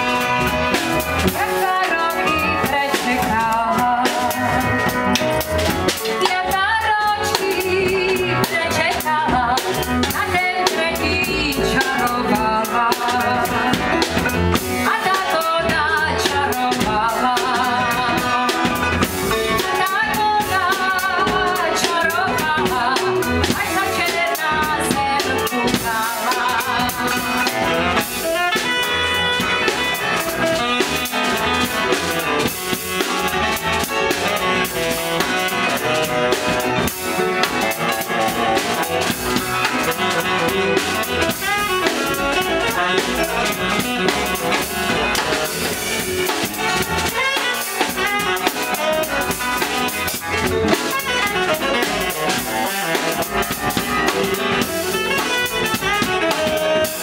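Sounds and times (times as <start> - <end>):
double bass: 0.0 - 57.0
drum kit busy rhythm: 0.0 - 57.0
piano: 0.0 - 57.0
saxophone: 0.0 - 57.0.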